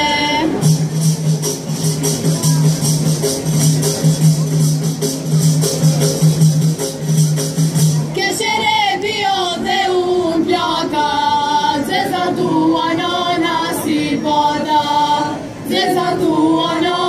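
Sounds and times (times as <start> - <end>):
choir singing unaccompanied: 0.0 - 3.0, 8.1 - 17.0
instrumental music: 0.0 - 17.0.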